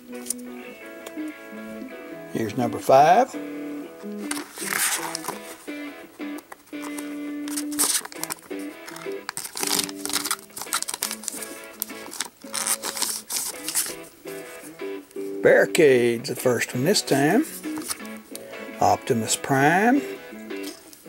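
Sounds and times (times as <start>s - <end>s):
background music: 0.0s - 21.0s
plastic wrapper crinkling and tearing: 4.2s - 5.6s, 6.4s - 14.1s.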